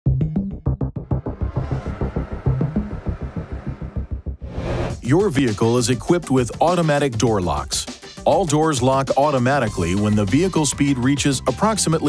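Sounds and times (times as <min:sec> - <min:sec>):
low sustained bass notes: 0:00.2 - 0:05.2
fast pulsing beat: 0:04.0 - 0:10.7.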